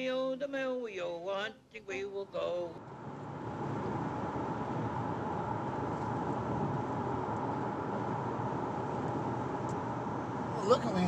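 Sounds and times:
road and engine noise in car: 0:01.8 - 0:11.0.

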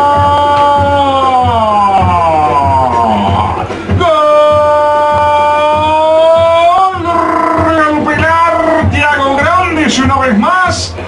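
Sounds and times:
man's drawn-out goal cry: 0:00.0 - 0:09.7.

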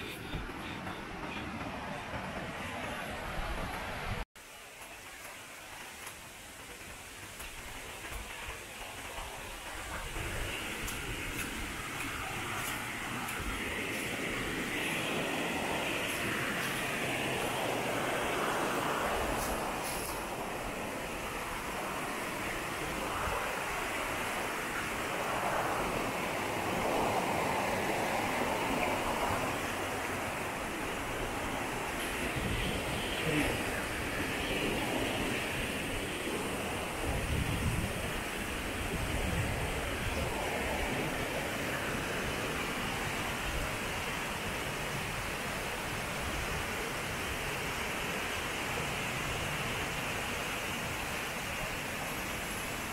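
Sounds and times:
stream water rushing over boulders: 0:02.6 - 0:52.9.

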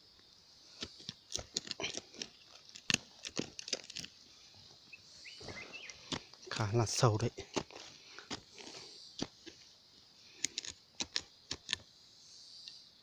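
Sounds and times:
hand scraping gravelly soil: 0:00.5 - 0:12.8.

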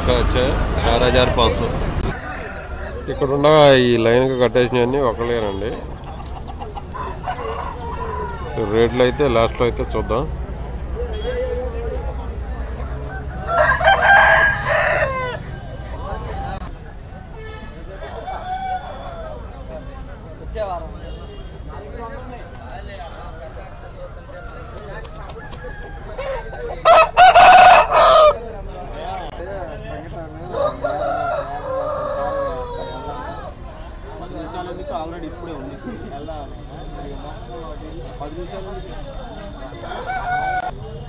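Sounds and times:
rooster crowing: 0:02.0 - 0:03.4, 0:12.8 - 0:15.7, 0:25.3 - 0:28.4, 0:30.5 - 0:33.5, 0:39.8 - 0:40.8.

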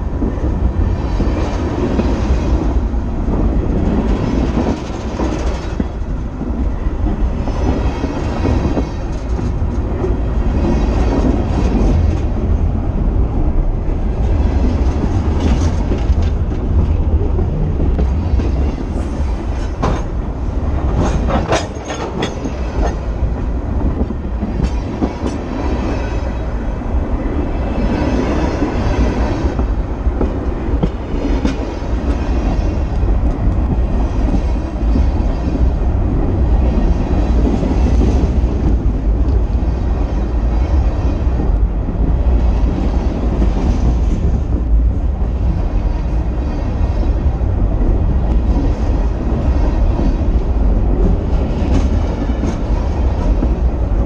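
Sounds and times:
train wheels rumbling on track: 0:00.0 - 0:54.0.

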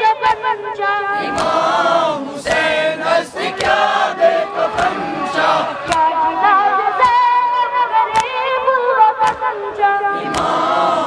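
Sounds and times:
crowd chanting a lament: 0:00.2 - 0:08.7, 0:09.5 - 0:11.0
hands slapping chests: 0:01.2 - 0:02.8, 0:03.4 - 0:04.0, 0:04.7 - 0:05.2, 0:05.8 - 0:06.1, 0:08.1 - 0:08.4, 0:10.2 - 0:10.9.

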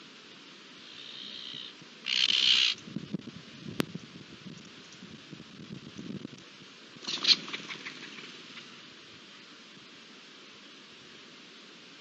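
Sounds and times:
harsh animal calls: 0:00.8 - 0:02.8.

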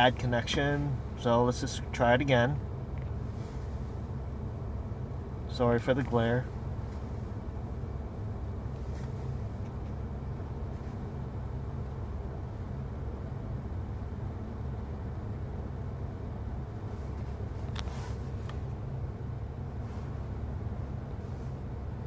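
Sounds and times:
low hum inside car cabin: 0:00.0 - 0:22.0.

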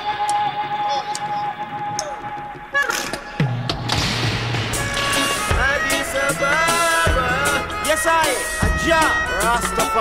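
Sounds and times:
reggae music: 0:00.0 - 0:10.0
voices chanting: 0:05.5 - 0:10.0.

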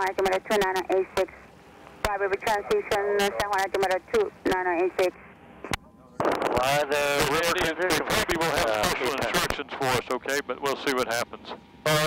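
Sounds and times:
speech over radio: 0:00.0 - 0:01.4, 0:02.0 - 0:05.2
sharp radio clicks: 0:00.0 - 0:03.9.

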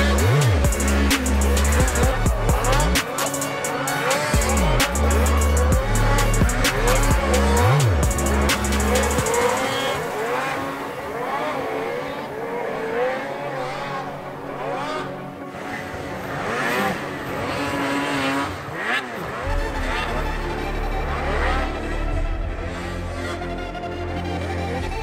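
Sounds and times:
background music with bass beat: 0:00.0 - 0:11.6, 0:19.5 - 0:25.0
snowmobile engines revving: 0:00.0 - 0:25.0.

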